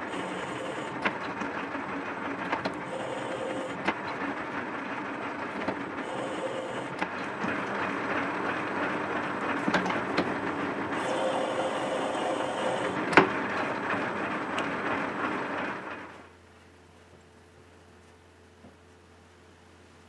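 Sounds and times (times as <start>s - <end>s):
lathe gears clattering: 0.0s - 16.3s.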